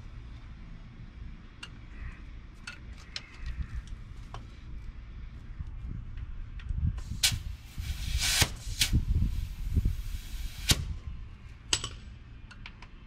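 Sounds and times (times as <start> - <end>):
rushing hiss: 7.1 - 10.9.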